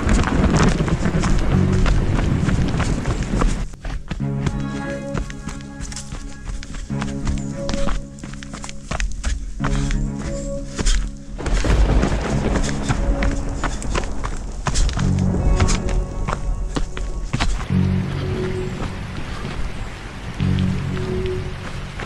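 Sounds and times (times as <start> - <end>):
background music with steady beat: 1.1 - 19.5.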